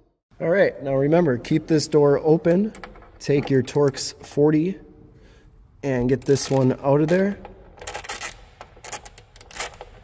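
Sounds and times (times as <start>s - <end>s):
hand ratchet clicking: 6.3s - 10.0s.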